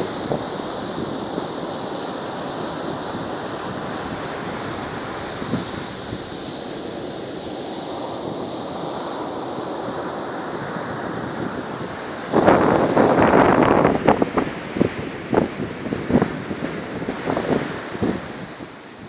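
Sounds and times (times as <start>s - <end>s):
loud choppy rush of noise: 0.0s - 19.0s
surf washing up beach: 0.0s - 19.0s.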